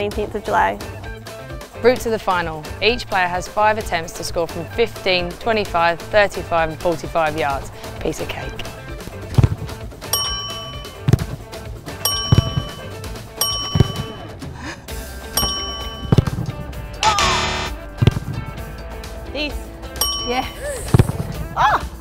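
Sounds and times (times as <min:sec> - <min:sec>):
background music: 0:00.0 - 0:22.0
footballs being kicked thuds: 0:09.3 - 0:10.0, 0:10.8 - 0:14.3, 0:15.4 - 0:16.8
bright chime sound effects: 0:10.2 - 0:11.1, 0:12.0 - 0:14.3, 0:15.4 - 0:16.2.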